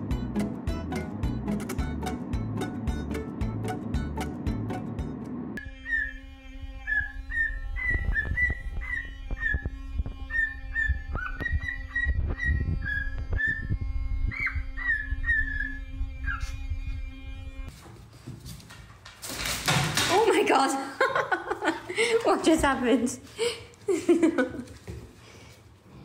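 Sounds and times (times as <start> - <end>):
steady low hum: 0.0 - 17.7
cockatiel whistling: 5.8 - 6.2, 6.8 - 16.6.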